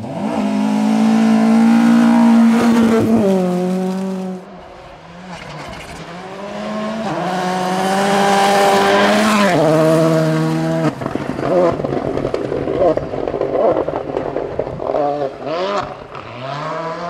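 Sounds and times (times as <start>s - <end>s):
rally car engine passing: 0.0s - 17.0s.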